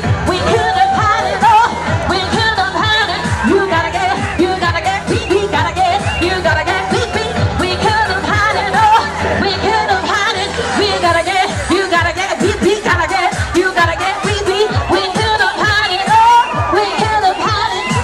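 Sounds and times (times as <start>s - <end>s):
pop song with singing: 0.0s - 18.0s.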